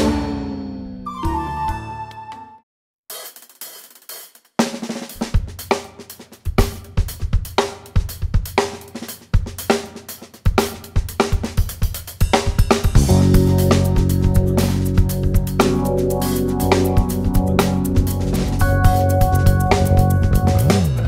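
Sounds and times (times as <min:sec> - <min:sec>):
hi-hat and cymbal: 0:03.1 - 0:21.0
kick drum and snare: 0:04.6 - 0:15.8.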